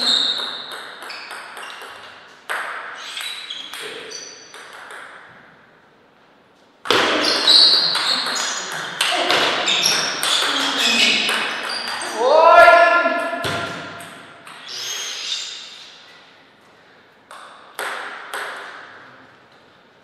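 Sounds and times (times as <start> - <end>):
table tennis ball hits: 0.1 - 5.5, 6.8 - 12.2, 13.2 - 14.7, 17.3 - 19.0.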